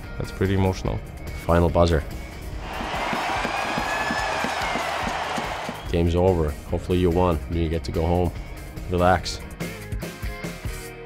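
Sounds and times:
crowd cheering: 2.6s - 6.0s
arena buzzer: 2.8s - 5.9s.

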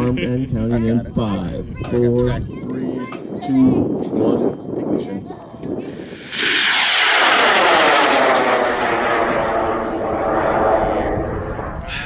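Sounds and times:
rocket motor roaring: 5.8s - 12.0s.

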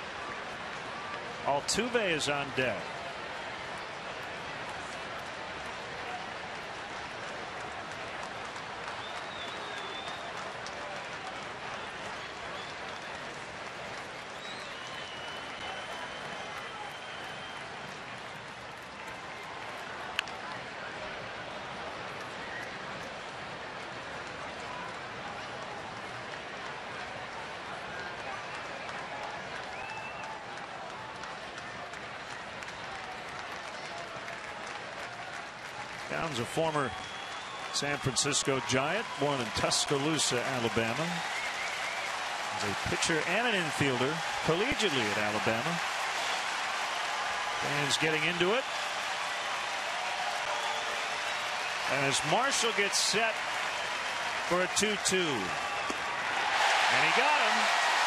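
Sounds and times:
crowd clapping: 0.0s - 21.1s, 21.7s - 58.0s
crowd chatter and calls: 50.5s - 58.0s.

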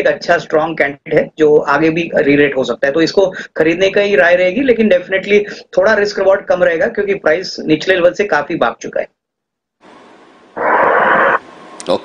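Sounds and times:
loud burst of hiss-like noise: 9.8s - 12.0s.

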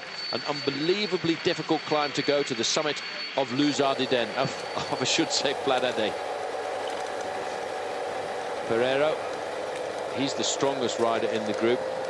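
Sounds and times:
faint steady hum: 3.7s - 12.0s.

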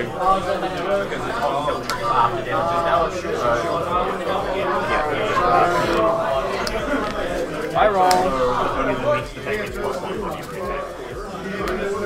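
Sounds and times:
murmured voices: 0.0s - 12.0s.

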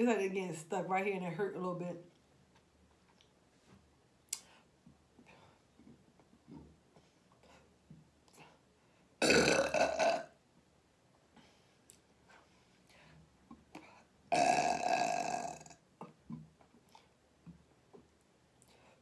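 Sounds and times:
woman burping loudly: 9.2s - 10.4s, 14.3s - 15.8s.

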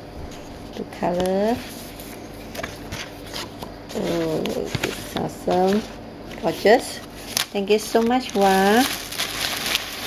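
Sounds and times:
paper rustling: 0.3s - 10.0s.

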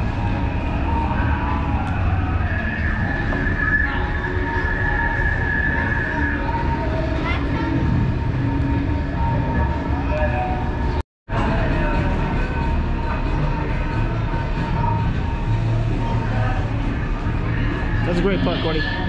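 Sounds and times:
low rumbling background noise: 0.0s - 19.0s.

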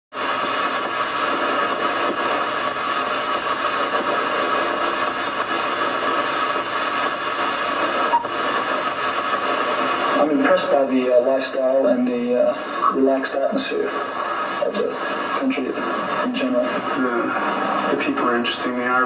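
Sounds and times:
hissing static: 0.1s - 19.0s.

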